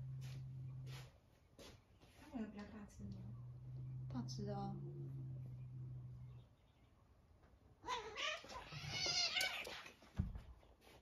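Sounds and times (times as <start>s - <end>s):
cats scuffling: 7.4s - 11.0s
cat yowling: 7.8s - 9.9s.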